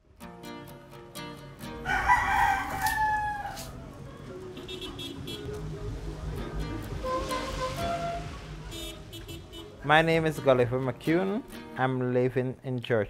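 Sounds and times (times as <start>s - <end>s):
rooster crowing: 1.8s - 3.9s.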